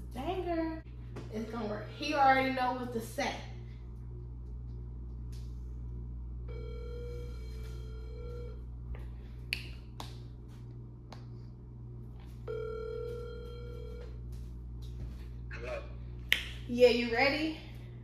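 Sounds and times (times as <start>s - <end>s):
phone ringback tone: 6.5s - 8.6s, 12.4s - 14.2s.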